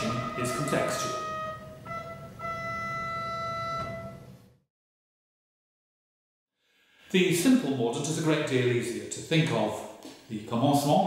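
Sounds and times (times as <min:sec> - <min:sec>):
organ playing: 0:00.0 - 0:04.6.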